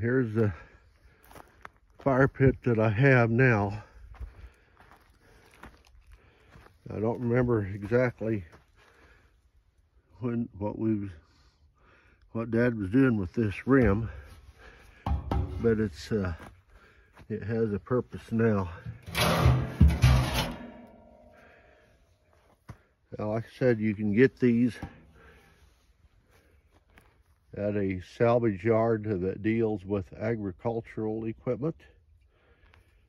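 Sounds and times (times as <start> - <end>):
outdoor background noise: 0.0 - 33.0
man speaking: 12.4 - 14.2, 15.5 - 16.5, 17.3 - 18.9, 23.2 - 24.9, 27.6 - 31.7
metal scraping: 15.1 - 16.2, 18.8 - 21.5
heavy metal clang ringing: 19.0 - 21.5.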